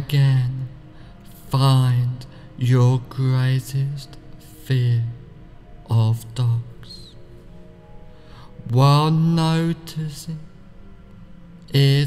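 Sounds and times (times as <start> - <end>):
chanted vocal note: 0.0 - 12.0
music: 0.0 - 12.0.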